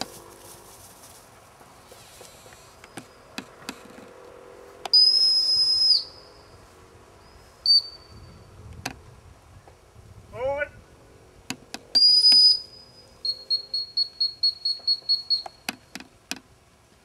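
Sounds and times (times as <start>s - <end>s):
high whistle blasts: 4.9s - 6.5s, 7.6s - 8.4s, 12.0s - 15.7s.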